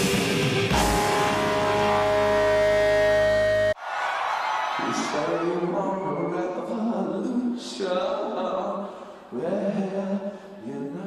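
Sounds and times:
heavy rock music: 0:00.0 - 0:03.8.

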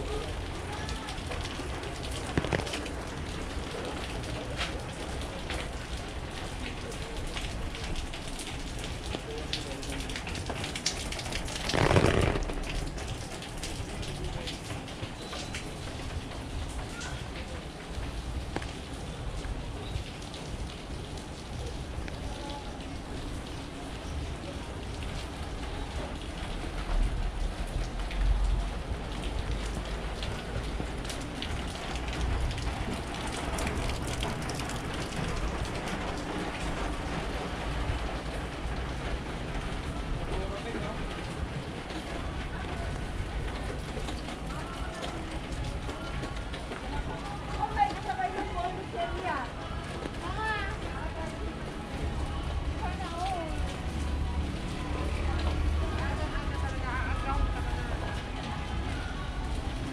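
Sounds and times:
steady rainfall: 0:00.0 - 0:59.9.

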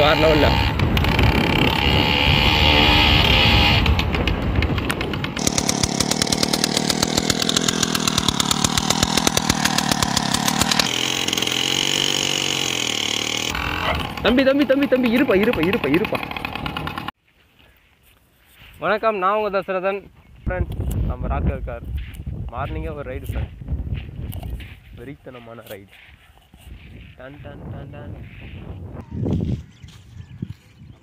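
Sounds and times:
small engine buzzing: 0:00.0 - 0:17.1.

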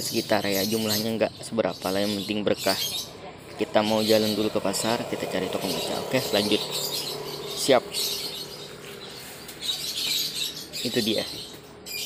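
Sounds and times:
birds chirping: 0:00.0 - 0:12.0
faint outdoor background noise: 0:00.0 - 0:12.0.

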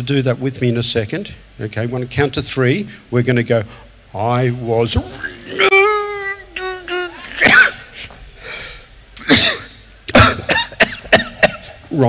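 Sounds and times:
man coughing into a microphone: 0:07.3 - 0:08.0, 0:09.2 - 0:11.8.

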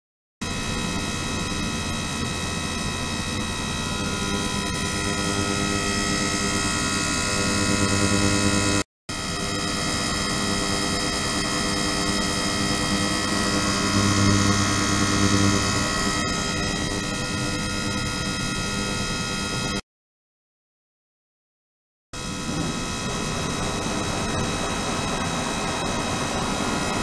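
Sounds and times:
ultrasonic cleaner humming: 0:03.1 - 0:19.0.

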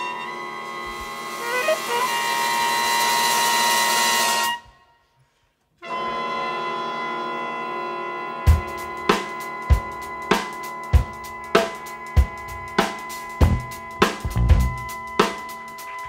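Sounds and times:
big band brass and reeds chord: 0:00.0 - 0:04.7, 0:05.8 - 0:16.0.

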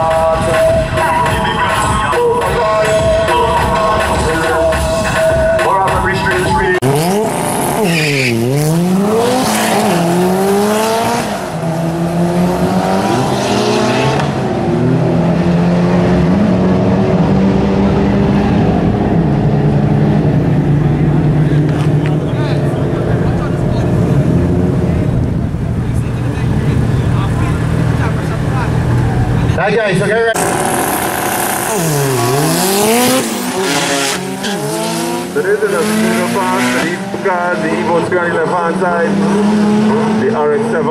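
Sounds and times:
car engine accelerating through gears: 0:06.8 - 0:29.6, 0:30.4 - 0:40.9.

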